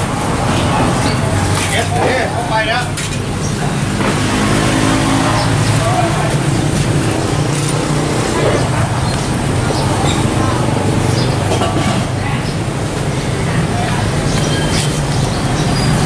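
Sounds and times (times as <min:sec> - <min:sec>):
traffic noise: 0:00.0 - 0:16.0.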